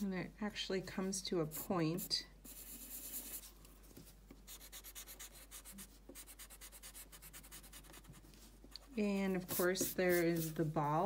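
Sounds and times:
pencil scratching on paper: 1.5 - 3.5, 4.5 - 11.0.

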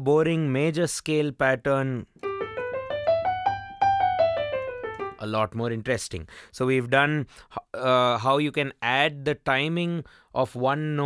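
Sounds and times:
digital piano playing a scale: 2.2 - 5.3.

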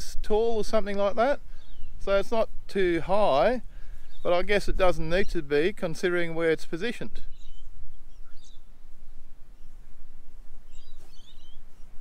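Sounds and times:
wind rumbling on microphone: 0.0 - 12.0
high bird chirps: 7.3 - 8.7, 10.6 - 12.0.

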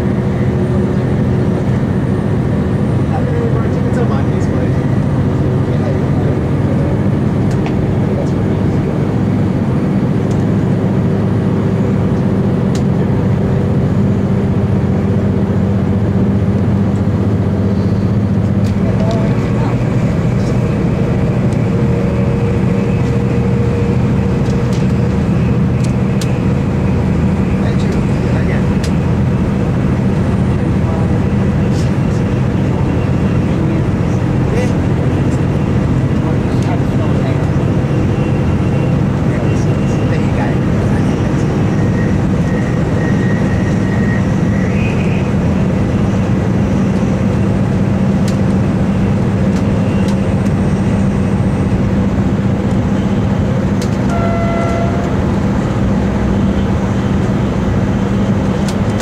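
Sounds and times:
diesel engine drone: 0.0 - 59.0
wheel-on-rail rumble: 0.0 - 59.0
faint high whine: 54.1 - 56.7.

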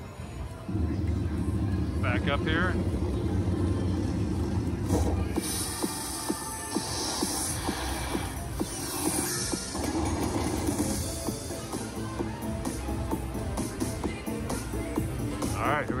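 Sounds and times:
slot machine music: 0.0 - 13.5.

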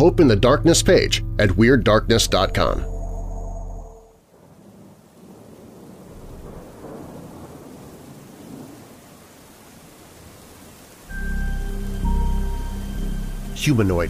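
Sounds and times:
low droning music: 0.0 - 4.2, 11.1 - 14.0
low thunder rumbling: 2.2 - 11.7
steady rain: 4.1 - 14.0.

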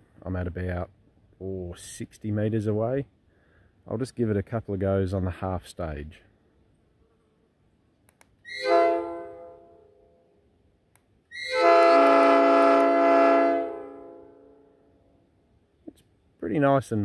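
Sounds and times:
air horn chord blasts: 8.5 - 9.9, 11.4 - 14.5.

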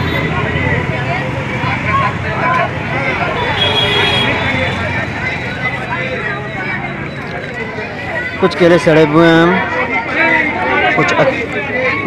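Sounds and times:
babble of voices: 0.0 - 12.0
traffic running by: 0.0 - 12.0.

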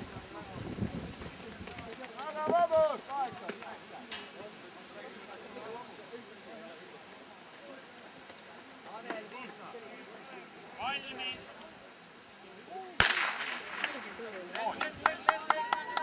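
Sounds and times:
faint talk: 0.0 - 16.0.

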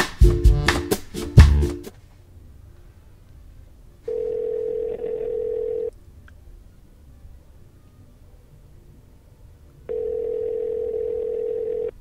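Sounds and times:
telephone ringback tone: 4.1 - 5.9, 9.9 - 12.0.

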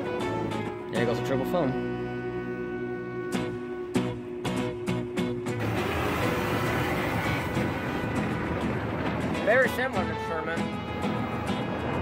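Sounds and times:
water spraying onto a car: 5.6 - 8.1.

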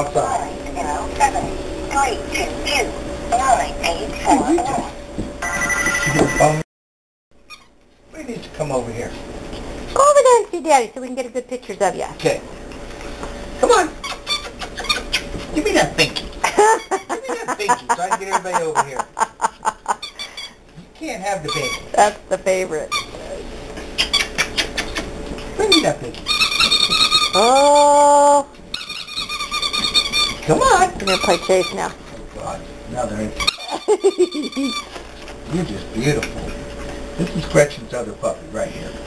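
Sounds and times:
telephone ringing: 5.4 - 6.6
puppies squeaking: 7.4 - 7.8, 14.0 - 17.1, 19.9 - 20.6, 21.4 - 22.0, 22.9 - 23.3, 23.9 - 25.1, 25.7 - 32.0, 33.4 - 35.0.

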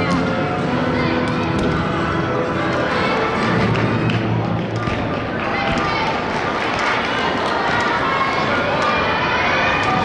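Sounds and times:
crowd chatter in large hall: 0.0 - 10.0.

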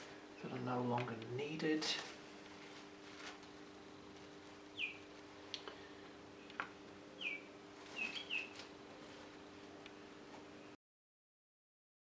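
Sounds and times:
steady low hum: 0.0 - 10.8
small bird chirping: 4.7 - 5.1, 7.1 - 8.7.

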